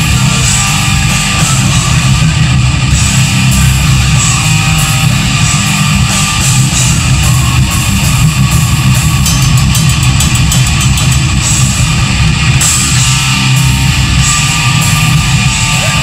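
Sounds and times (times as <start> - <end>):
heavy metal band playing: 0.0 - 16.0
rapid drum and cymbal strikes: 0.0 - 16.0.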